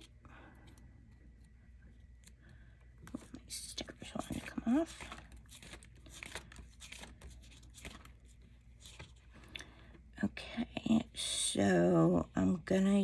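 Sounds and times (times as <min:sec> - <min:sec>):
paper pages rustling: 0:02.0 - 0:09.5.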